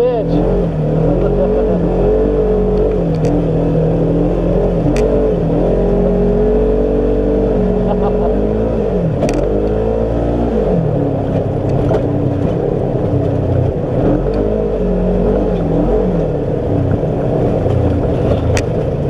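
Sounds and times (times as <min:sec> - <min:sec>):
off-road vehicle engine running: 0:00.0 - 0:19.0.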